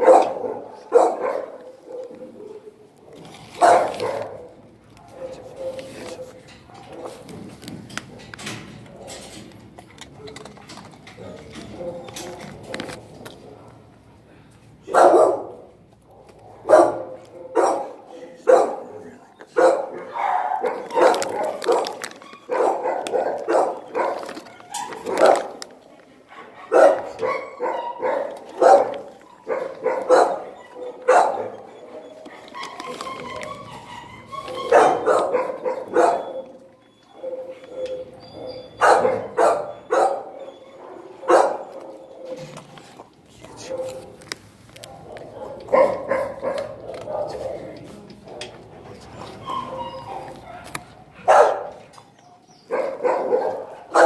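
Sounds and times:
dogs barking: 0:00.0 - 0:07.3, 0:11.6 - 0:13.4, 0:14.8 - 0:42.8, 0:43.4 - 0:54.0.

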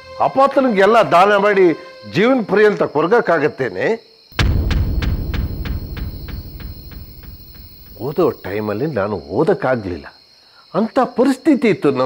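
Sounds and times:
crickets chirring: 0:02.0 - 0:12.0.

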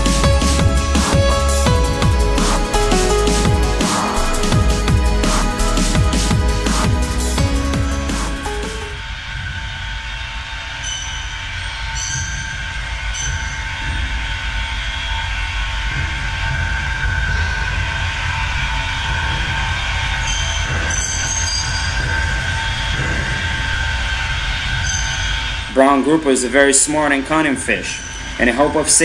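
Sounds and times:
faint whining tones: 0:08.9 - 0:29.0.

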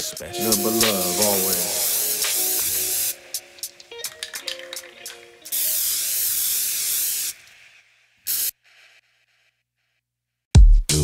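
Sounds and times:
spray-paint can hissing: 0:00.0 - 0:09.0
plucked-string music: 0:03.2 - 0:05.5.

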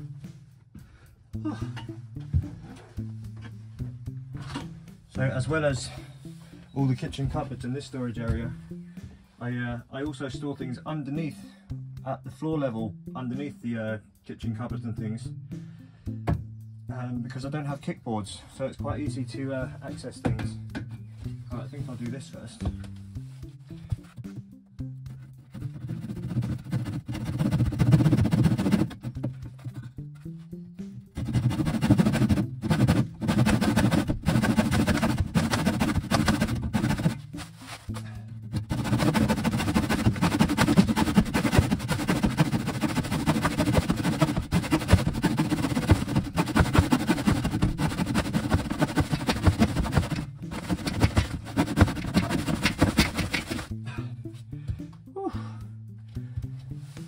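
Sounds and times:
background music: 0:00.0 - 0:57.0
handsaw cutting wood: 0:25.5 - 0:29.9, 0:31.2 - 0:53.7.

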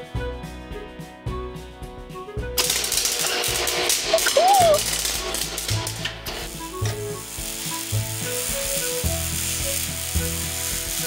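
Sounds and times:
background music with bass line: 0:00.0 - 0:11.0
welding arc sizzling and crackling: 0:02.6 - 0:11.0.

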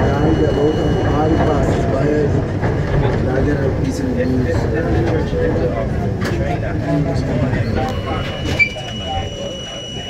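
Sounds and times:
indistinct voices talking: 0:00.0 - 0:10.0
subway train rumbling: 0:00.0 - 0:10.0
short squeak: 0:07.7 - 0:10.0.

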